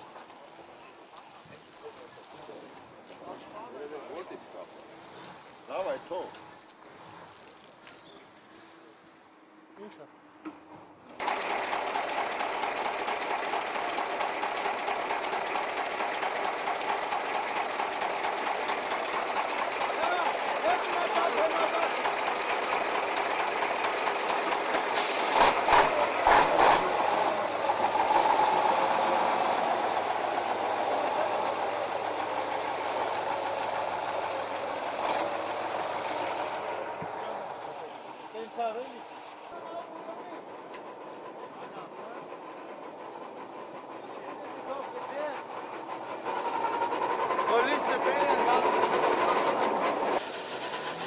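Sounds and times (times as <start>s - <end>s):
men talking: 1.6s - 5.0s, 5.7s - 6.4s, 19.8s - 22.0s, 37.0s - 40.7s, 41.3s - 42.5s, 43.9s - 45.6s, 47.4s - 49.0s
truck engine idling: 11.2s - 51.0s.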